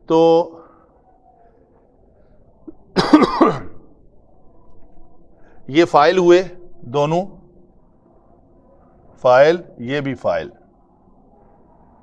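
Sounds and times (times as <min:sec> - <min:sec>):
man clearing throat: 0:03.0 - 0:03.8.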